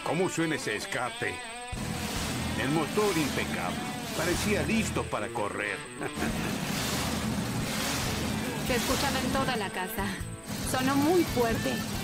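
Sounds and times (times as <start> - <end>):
loud car engine running: 1.8 - 4.9, 6.2 - 9.6, 10.3 - 12.0.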